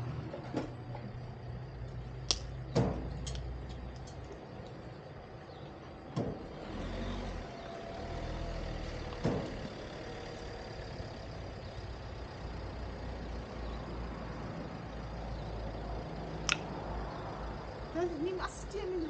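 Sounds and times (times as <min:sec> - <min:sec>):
vehicle engine rumbling: 0:00.0 - 0:19.0
sharp click: 0:16.4 - 0:16.7.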